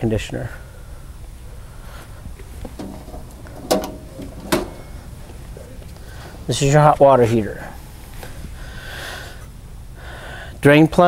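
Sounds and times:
access door latch clacks: 2.6s - 5.2s
door rattle: 2.6s - 5.6s.

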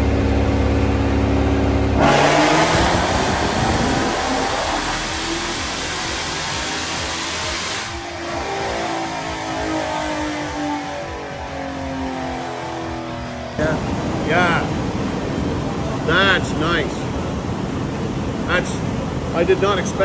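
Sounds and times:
car engine full-throttle pull: 0.0s - 8.9s.

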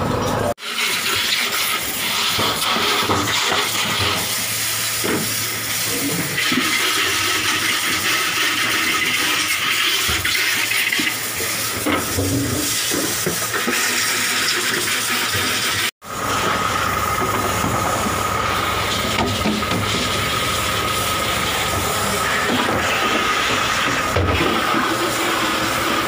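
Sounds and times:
hose spraying water: 0.6s - 26.0s
mechanical drone with high whine: 16.0s - 26.0s.

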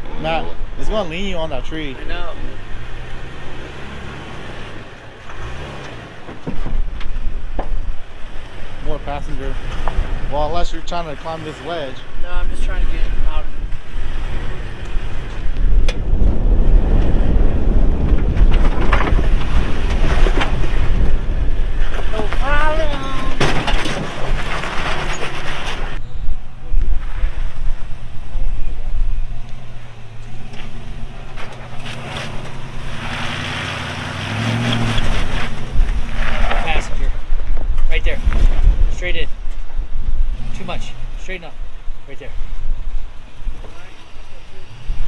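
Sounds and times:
vehicle engines crawling over rock: 0.0s - 26.0s, 26.7s - 45.0s
wind buffeting microphone: 12.1s - 25.0s, 34.3s - 43.6s
engine idling and pulling: 18.2s - 26.7s
indistinct voices: 22.0s - 24.0s.

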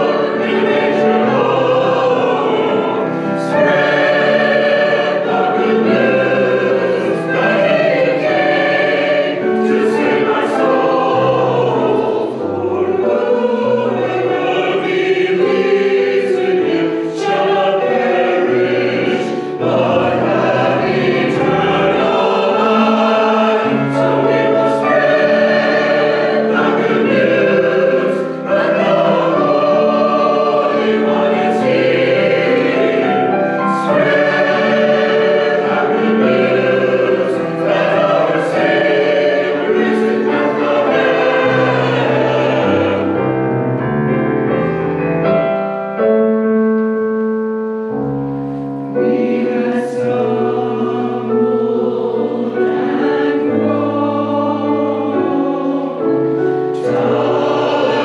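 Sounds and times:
choir singing in harmony: 0.0s - 46.6s, 47.2s - 58.0s.

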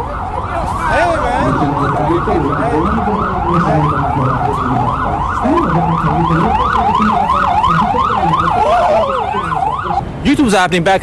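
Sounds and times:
emergency vehicle siren yelping: 0.0s - 10.5s.

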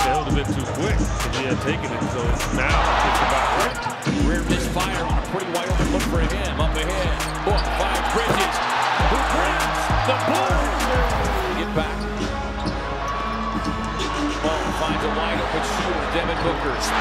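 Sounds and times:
background music with deep bass: 0.0s - 17.0s.

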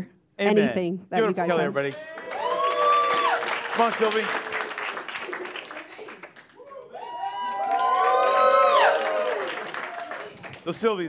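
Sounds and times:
audience cheering and whooping: 1.9s - 3.8s, 4.6s - 10.6s.

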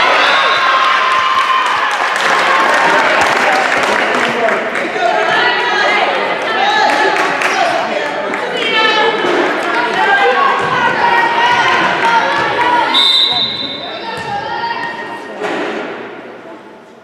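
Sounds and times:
players and spectators calling out: 0.0s - 16.0s
referee's whistle blast: 12.9s - 14.0s.

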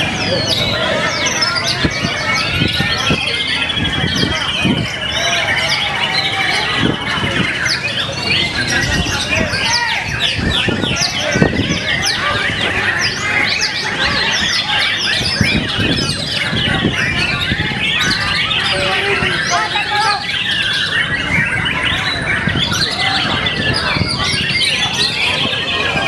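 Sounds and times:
birds singing: 0.0s - 26.0s.

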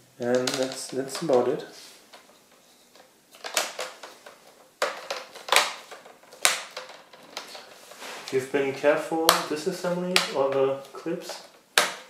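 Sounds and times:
plastic clips snapping: 0.2s - 1.5s, 2.9s - 7.7s, 9.2s - 12.0s
plastic handling: 0.2s - 12.0s.

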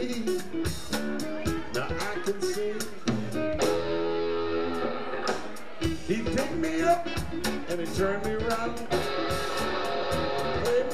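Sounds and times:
blues-rock band playing: 0.0s - 10.9s.

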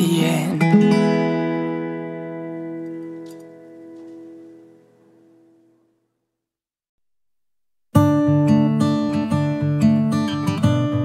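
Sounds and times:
acoustic guitar chord ringing: 0.0s - 6.0s, 7.9s - 11.0s.

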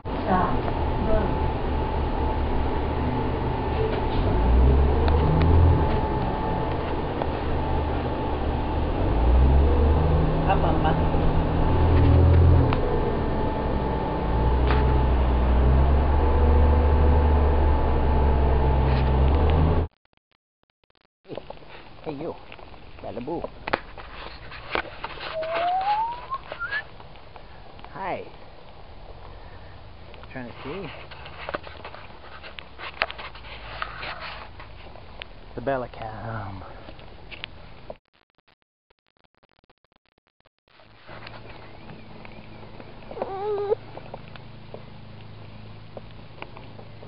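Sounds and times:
steady low hum: 0.1s - 19.4s, 40.8s - 47.0s
toddler cooing: 25.4s - 26.2s
person whistling: 25.4s - 26.9s.

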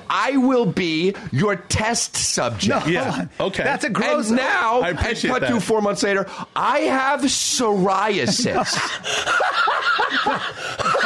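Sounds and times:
men laughing: 2.6s - 3.4s, 8.1s - 11.0s.

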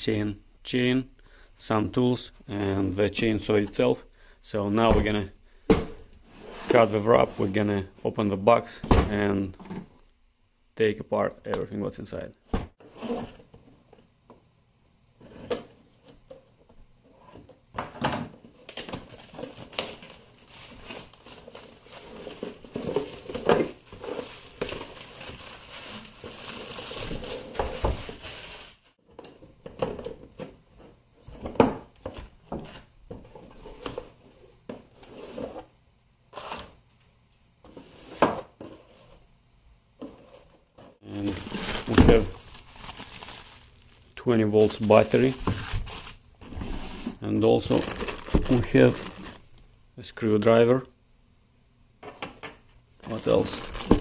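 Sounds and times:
plastic wrap tearing and crinkling: 18.7s - 28.9s, 41.1s - 46.2s, 47.6s - 49.5s, 53.1s - 54.0s.

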